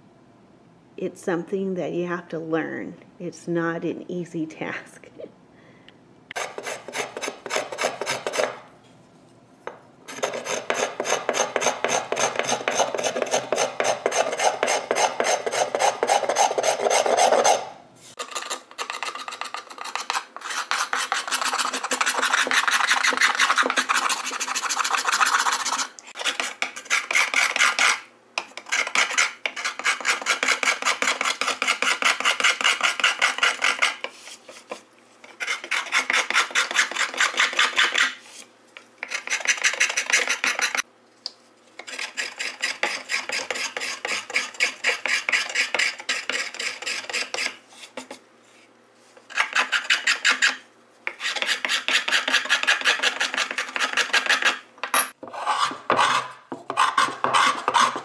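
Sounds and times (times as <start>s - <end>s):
hand scraper rasping on wood: 6.3s - 8.6s, 10.1s - 38.2s, 39.0s - 40.8s, 41.8s - 48.2s, 49.3s - 54.6s, 55.4s - 58.0s.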